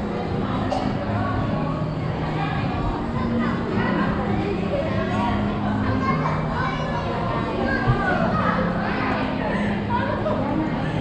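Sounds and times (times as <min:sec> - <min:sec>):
children's voices chattering: 0:00.0 - 0:11.0
faint background music: 0:00.0 - 0:11.0.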